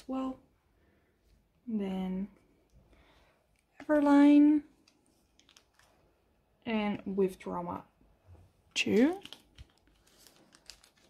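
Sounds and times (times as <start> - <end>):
plastic binder page crinkling: 3.8 - 6.1, 8.8 - 11.0.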